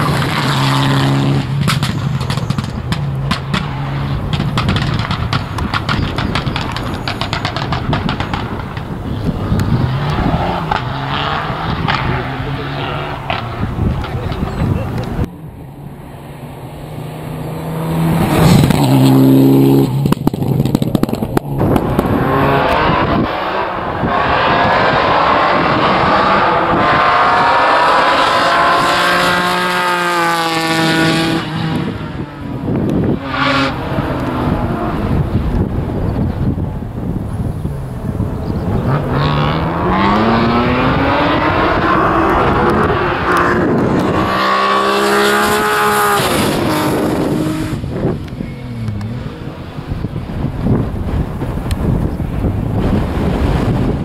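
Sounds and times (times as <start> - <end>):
rally car engines revving: 0.0 - 54.0
sharp crack: 1.4 - 10.9.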